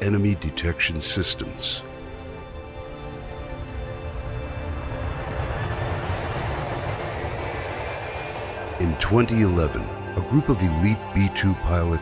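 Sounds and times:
jet engines flying past: 0.6 - 12.0.

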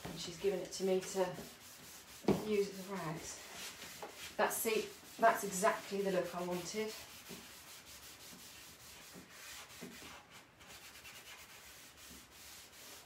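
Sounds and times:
rag rubbing on wooden tabletop: 0.1 - 13.0.

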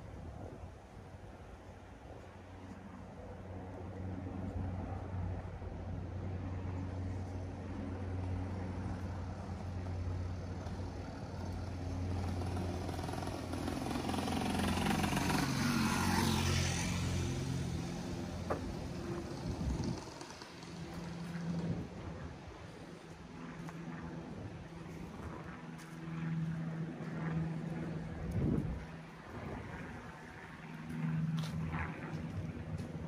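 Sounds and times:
traffic engine hum: 0.0 - 33.0
vehicle passing: 4.0 - 33.0.

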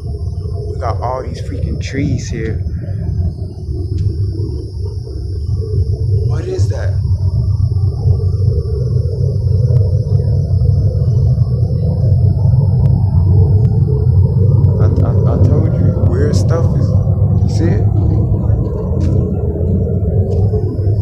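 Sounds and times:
low droning rumble: 0.0 - 21.0
wavering tone: 0.0 - 21.0.

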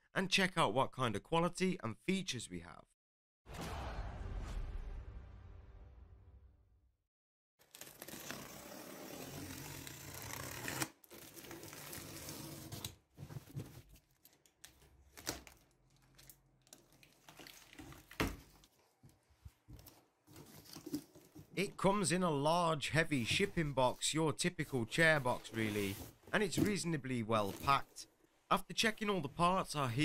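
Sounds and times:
packing tape peeled off cardboard: 7.6 - 13.0.

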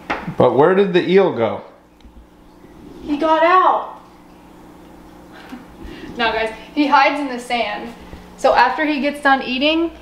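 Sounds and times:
faint low hum: 0.3 - 10.0.

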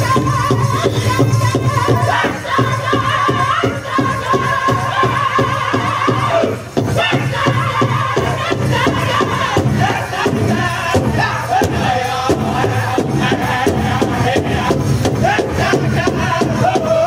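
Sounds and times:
big drum steady beat: 0.0 - 17.0
men chanting in high voices: 0.0 - 17.0.

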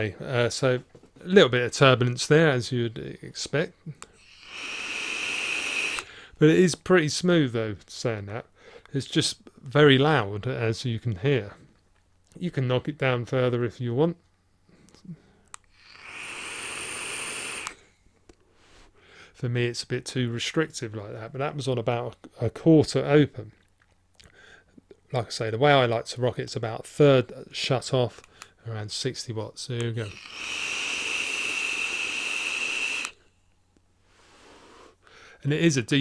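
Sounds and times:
breathy air hiss with whistle: 3.8 - 6.4, 14.7 - 19.4, 30.0 - 35.5
faint exhale: 4.1 - 6.4, 14.7 - 19.4, 30.0 - 33.3, 34.0 - 35.4.

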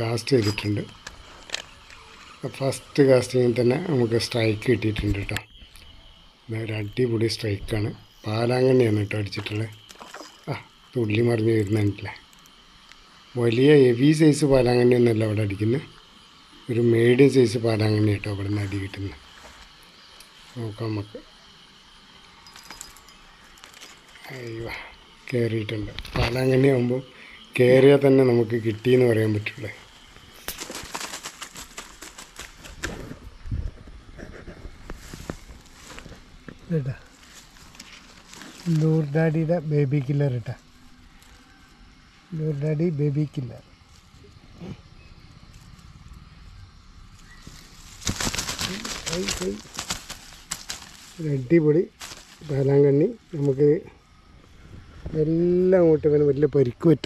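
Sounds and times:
faint insect calls: 0.0 - 57.0
rustling and crackling: 9.3 - 10.9, 22.4 - 24.8, 29.4 - 39.2, 47.0 - 52.7
fish flapping in grass and leaves: 9.8 - 10.5, 29.9 - 33.4, 47.2 - 52.6.

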